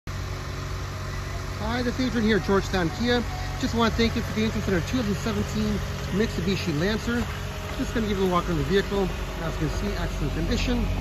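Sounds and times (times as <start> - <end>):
car engine idling: 0.1 - 11.0
man speaking: 1.6 - 11.0.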